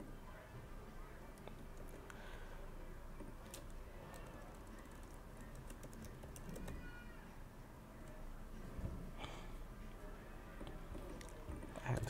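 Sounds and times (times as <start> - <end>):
computer keyboard typing: 3.4 - 6.8.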